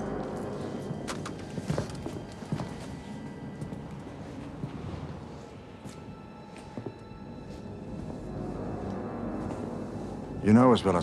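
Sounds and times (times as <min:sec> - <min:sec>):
footsteps walking across a room: 0:00.0 - 0:10.4
low steady drone: 0:00.0 - 0:11.0.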